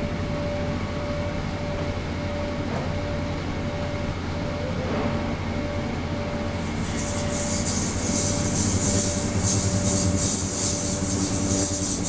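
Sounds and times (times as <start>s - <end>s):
ultrasonic cleaner hum: 5.6s - 12.0s
thin steady tone: 5.8s - 12.0s
water churning hiss: 6.0s - 12.0s.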